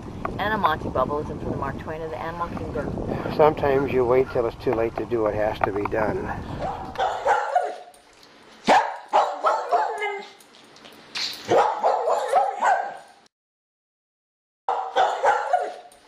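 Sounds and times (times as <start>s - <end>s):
dog barking: 6.6s - 7.9s, 8.6s - 10.4s, 11.5s - 13.1s, 14.7s - 15.9s.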